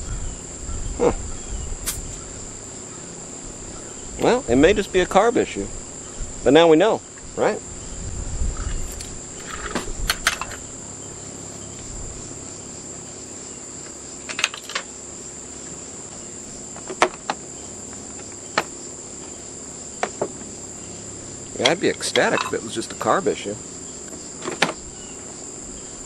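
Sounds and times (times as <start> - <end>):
insects droning: 0.0 - 26.0
metal tools clicking and tapping: 21.6 - 22.7.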